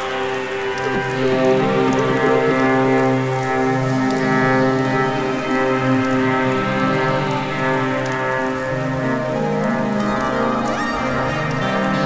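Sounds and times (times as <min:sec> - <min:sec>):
rain-like hiss: 0:00.0 - 0:12.0
sustained synthesizer chords: 0:00.0 - 0:12.0.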